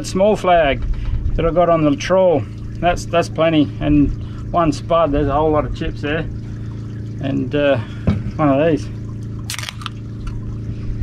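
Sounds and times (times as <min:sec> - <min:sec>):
drink can cracked open: 0:09.5 - 0:10.0.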